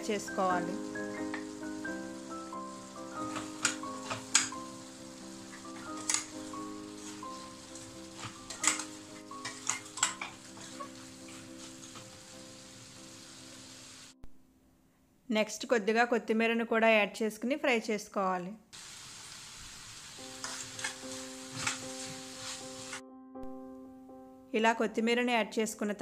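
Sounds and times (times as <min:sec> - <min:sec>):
chicken sizzling in a pan: 0:00.0 - 0:14.2, 0:18.8 - 0:23.0
soft background music: 0:00.0 - 0:14.7, 0:20.1 - 0:26.0
spatula scraping a pan: 0:05.6 - 0:12.2, 0:20.3 - 0:23.0.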